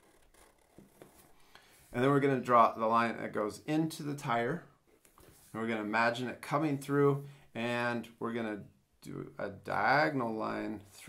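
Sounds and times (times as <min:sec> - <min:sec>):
marker scratching on paper: 0:00.0 - 0:01.3.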